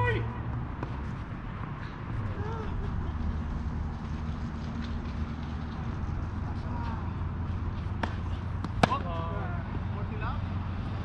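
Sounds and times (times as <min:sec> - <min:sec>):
tennis ball impact: 0:07.7 - 0:09.3.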